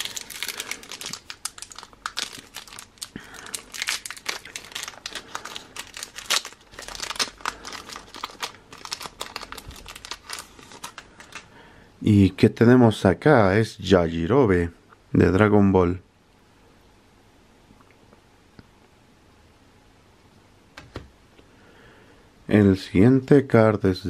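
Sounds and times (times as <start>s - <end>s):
wrapper being torn and crinkled: 0.0s - 11.5s.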